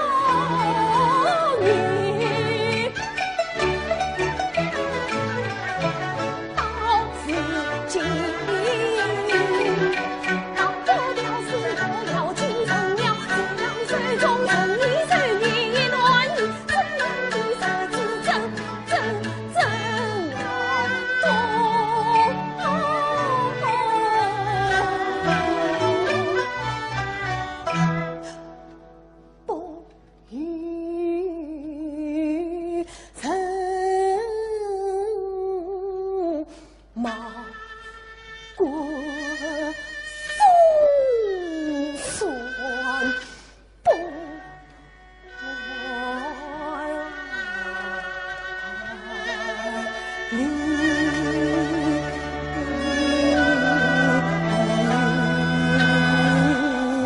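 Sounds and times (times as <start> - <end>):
woman singing opera: 0.0 - 3.2, 6.6 - 26.5, 29.5 - 44.7, 45.3 - 57.0
instrumental accompaniment: 0.0 - 30.3, 37.1 - 57.0
bowed strings: 0.0 - 32.8, 37.0 - 57.0.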